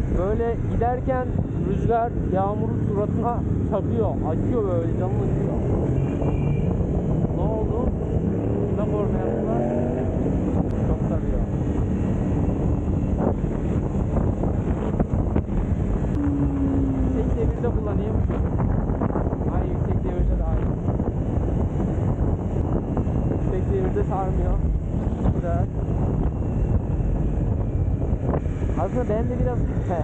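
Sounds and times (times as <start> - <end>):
wind buffeting microphone: 0.0 - 30.0
motorcycle engine running: 10.7 - 19.6.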